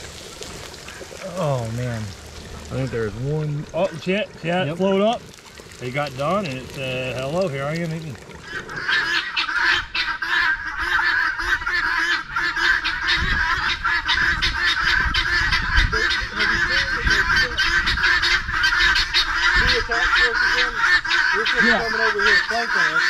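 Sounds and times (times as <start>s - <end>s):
guinea fowl calling: 8.4s - 23.0s
lower poultry calls: 8.4s - 23.0s.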